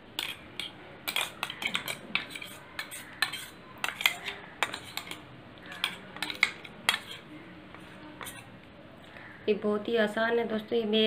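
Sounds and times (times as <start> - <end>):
metal utensil scraping a strainer: 0.2 - 7.3, 8.2 - 8.5.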